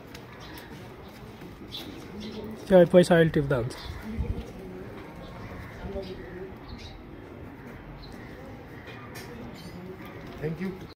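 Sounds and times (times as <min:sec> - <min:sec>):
outdoor background noise: 0:00.0 - 0:10.9.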